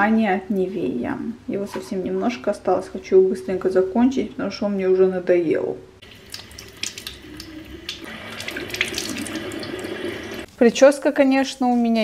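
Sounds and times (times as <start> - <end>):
hands splashing water: 6.1 - 10.0.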